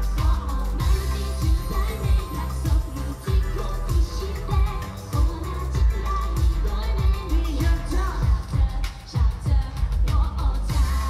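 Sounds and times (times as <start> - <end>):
heavy bass drum beat: 0.0 - 11.0
pop song with singer: 0.0 - 11.0.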